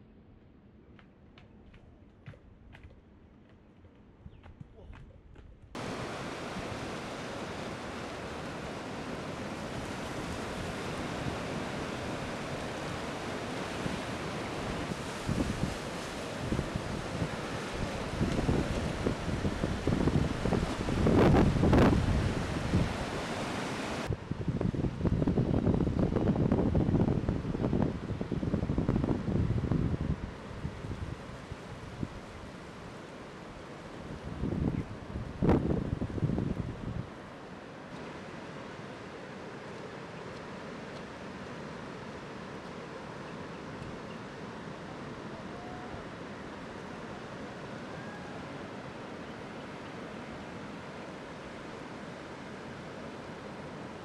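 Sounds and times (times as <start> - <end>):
waves breaking: 5.8 - 24.2
wind on microphone: 13.5 - 32.4, 34.0 - 37.1.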